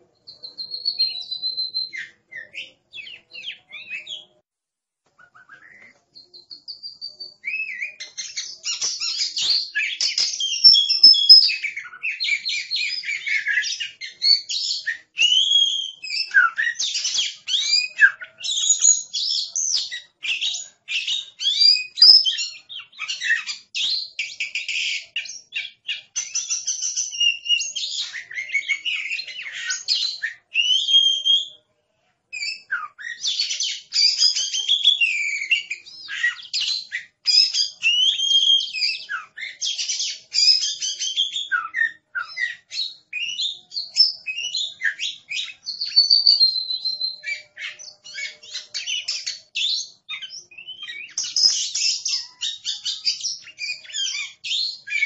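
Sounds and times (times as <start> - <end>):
bird singing whistles and chatter: 0.0 - 4.4, 5.2 - 31.7, 32.3 - 55.0.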